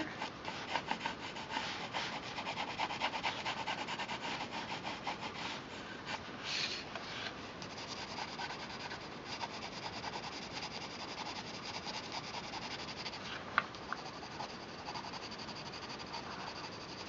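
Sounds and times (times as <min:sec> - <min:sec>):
pencil scratching on paper: 0:00.0 - 0:06.8, 0:07.6 - 0:13.4, 0:14.0 - 0:17.0.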